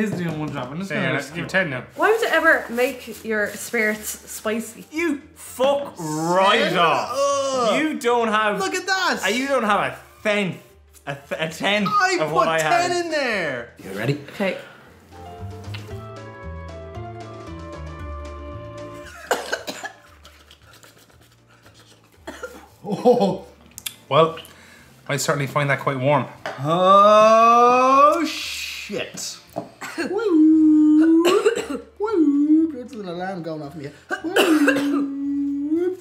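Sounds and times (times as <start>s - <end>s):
background music: 0.0s - 36.0s
person coughing harshly: 19.1s - 20.1s, 22.2s - 23.2s, 31.1s - 31.9s, 34.1s - 35.2s
person holding a long vocal sound: 30.1s - 31.2s.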